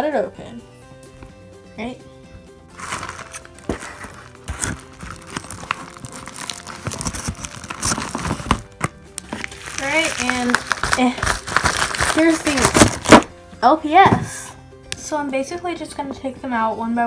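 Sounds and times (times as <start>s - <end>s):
background music: 0.0s - 17.0s
plastic mailer crinkling: 2.8s - 13.3s.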